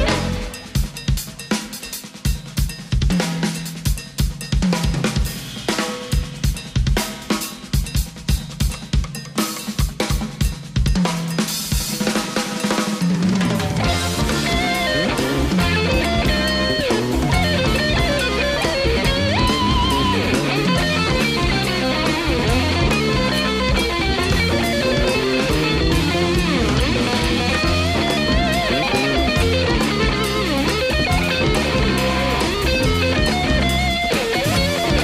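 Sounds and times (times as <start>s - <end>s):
held bass line: 0.0s - 0.6s, 13.5s - 35.0s
full live band playing: 0.0s - 35.0s
rapid snare and bass drum hits: 0.0s - 35.0s.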